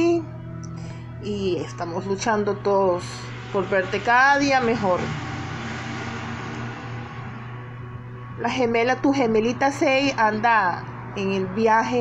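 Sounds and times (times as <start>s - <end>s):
low hum: 0.3s - 11.6s.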